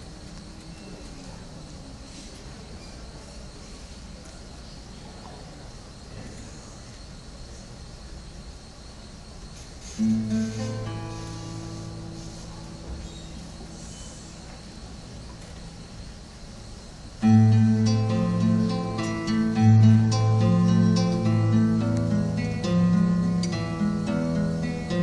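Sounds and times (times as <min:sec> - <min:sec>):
low background noise: 0:00.0 - 0:25.0
acoustic guitar: 0:09.9 - 0:14.3, 0:17.2 - 0:25.0.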